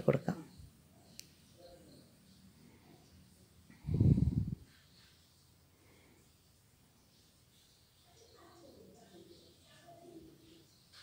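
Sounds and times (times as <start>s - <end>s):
faint click: 1.1s - 1.3s.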